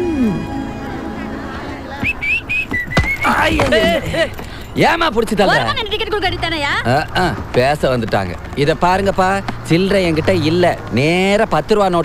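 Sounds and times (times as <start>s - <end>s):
man whistling: 2.0s - 3.8s.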